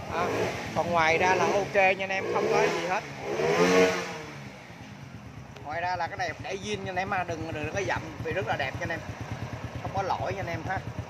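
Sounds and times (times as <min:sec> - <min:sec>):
motorcycle engine idling: 0:04.1 - 0:11.0.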